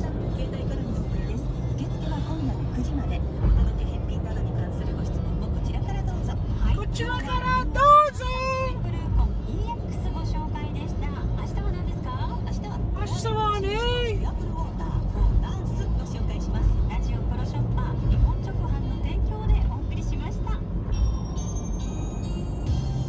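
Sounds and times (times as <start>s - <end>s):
car road and engine rumble: 0.0s - 23.0s
music: 18.1s - 23.0s.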